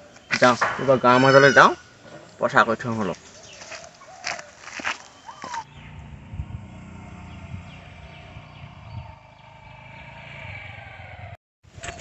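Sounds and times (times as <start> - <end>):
distant scooter engine hum: 5.0 - 12.0.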